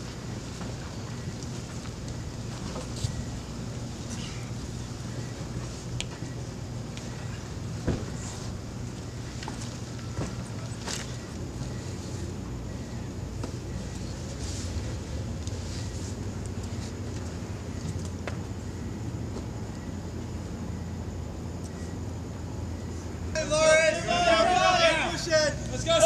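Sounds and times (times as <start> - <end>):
low mechanical hum: 0.0 - 26.0.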